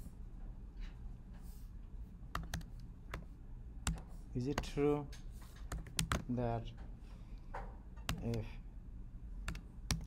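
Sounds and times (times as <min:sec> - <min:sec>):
keystrokes on computer keyboard: 0:02.3 - 0:06.3, 0:08.0 - 0:08.5, 0:09.4 - 0:10.0.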